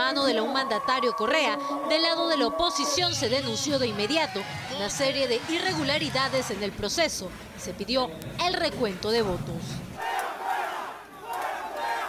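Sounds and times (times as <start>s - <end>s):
large crowd shouting: 2.8s - 6.6s, 10.0s - 12.0s.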